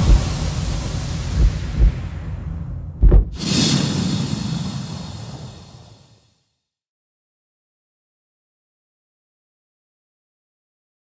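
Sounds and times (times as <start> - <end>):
deep booms: 0.0 - 3.8
noisy low wash: 0.0 - 6.2
sharp hit: 0.0 - 6.3.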